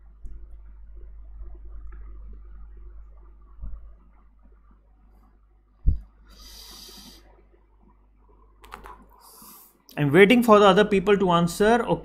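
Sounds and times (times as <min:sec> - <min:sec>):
computer keys tapping: 0:08.6 - 0:09.1.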